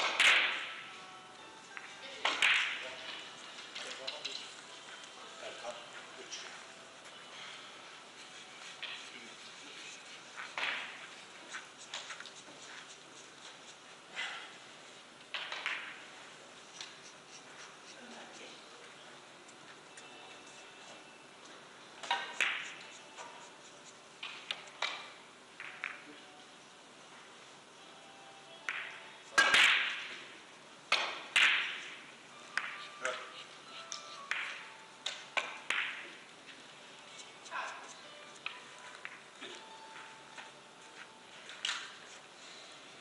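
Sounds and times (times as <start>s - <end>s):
low room noise: 0.0s - 43.0s
billiard balls clicking: 1.8s - 4.5s, 24.2s - 26.0s, 28.7s - 30.1s, 34.3s - 36.2s.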